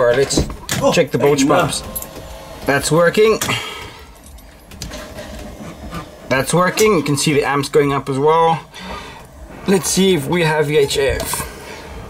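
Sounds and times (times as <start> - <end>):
electric bilge pump humming: 0.8 - 12.0.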